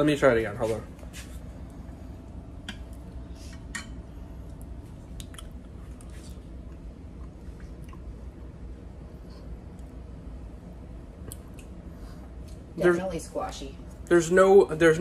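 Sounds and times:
steady low hum: 0:00.0 - 0:15.0
man chewing: 0:04.5 - 0:08.3.

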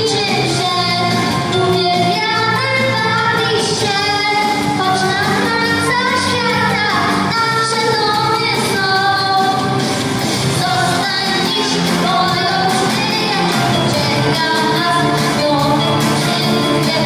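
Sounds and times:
girl singing into a microphone: 0:00.0 - 0:09.8, 0:10.6 - 0:17.0
musical accompaniment: 0:00.0 - 0:17.0.

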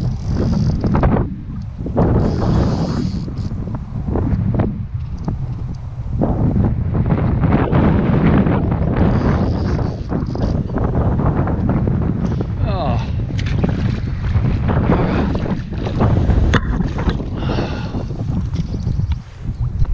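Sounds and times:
wind buffeting microphone: 0:00.0 - 0:19.9.

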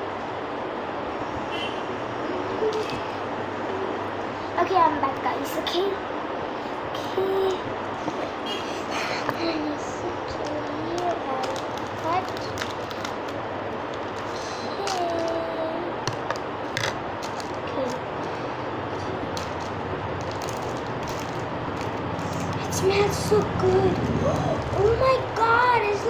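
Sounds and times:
steady background hiss: 0:00.0 - 0:26.0
plastic crinkling: 0:10.3 - 0:18.4, 0:19.0 - 0:25.6.

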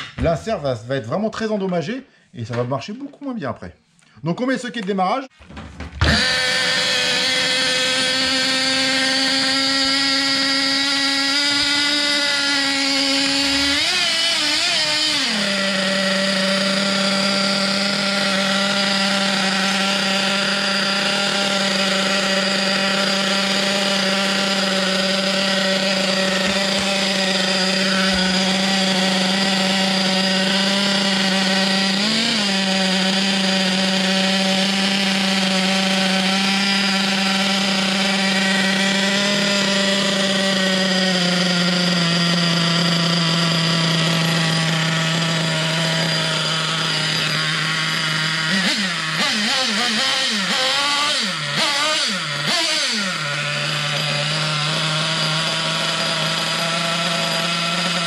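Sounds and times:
model car engine idling: 0:12.0 - 0:58.0.

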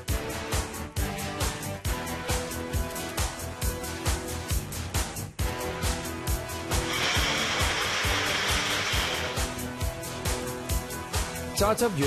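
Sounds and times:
background music with steady beat: 0:00.0 - 0:12.0
blender motor whirring: 0:06.7 - 0:09.6.

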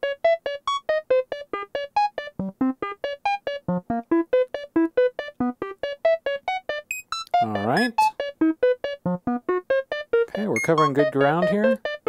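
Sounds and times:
synthesizer plucked notes with delay: 0:00.0 - 0:12.0.

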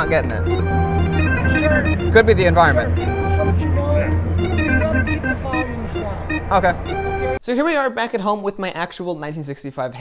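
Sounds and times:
organ playing over bass tone: 0:00.0 - 0:07.4
man talking: 0:01.2 - 0:10.0.

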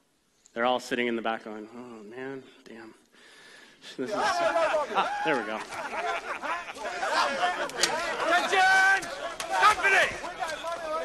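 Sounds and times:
men talking and calling: 0:03.7 - 0:11.0
man shouting: 0:04.1 - 0:05.7, 0:06.5 - 0:11.0.

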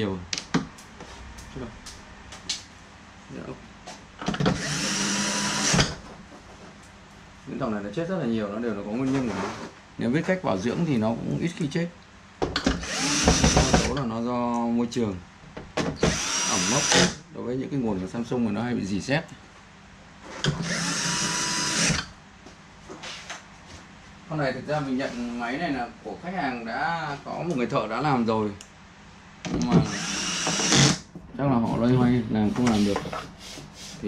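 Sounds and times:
electric screwdriver running: 0:04.5 - 0:05.9, 0:12.8 - 0:13.9, 0:16.1 - 0:17.2, 0:29.8 - 0:31.0.

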